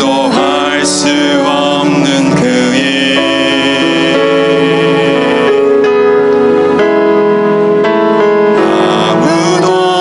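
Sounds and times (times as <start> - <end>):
group of voices singing: 0.0 - 5.8, 8.6 - 10.0
piano accompaniment: 0.0 - 10.0.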